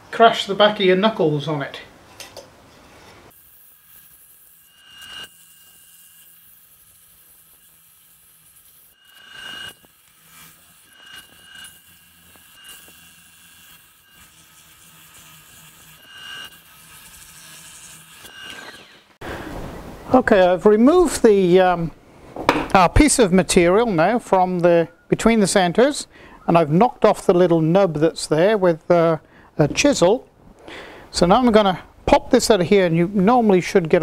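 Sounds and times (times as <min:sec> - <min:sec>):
sandpaper hissing on spinning wood: 0:03.3 - 0:19.1.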